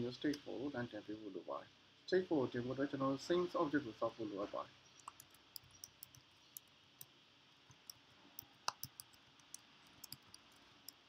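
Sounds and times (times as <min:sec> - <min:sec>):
low hiss: 0:00.0 - 0:11.0
typing on computer keyboard: 0:05.0 - 0:06.7, 0:08.7 - 0:11.0.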